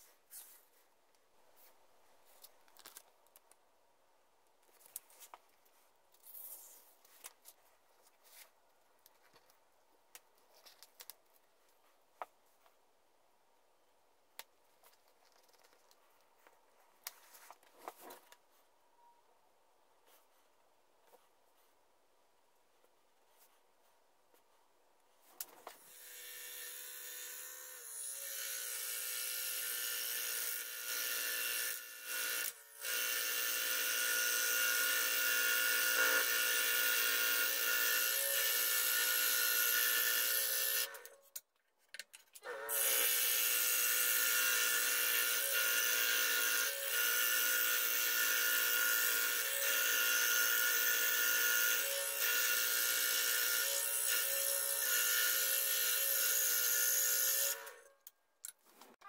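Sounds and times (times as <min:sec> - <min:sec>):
scroll saw cutting wood: 0:25.8 - 0:41.2, 0:42.4 - 0:57.9.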